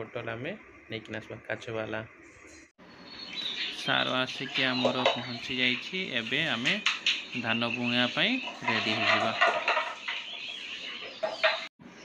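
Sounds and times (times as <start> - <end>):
chickens clucking: 3.3 - 11.7
man's voice: 3.8 - 9.5.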